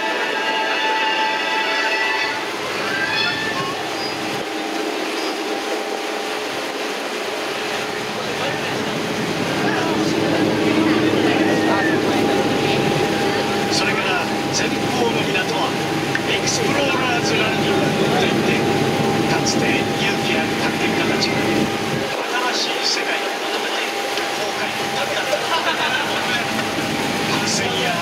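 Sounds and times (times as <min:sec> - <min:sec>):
boat engine drone: 0:00.0 - 0:28.0
thin steady whine: 0:00.0 - 0:28.0
murmur of voices: 0:06.7 - 0:28.0.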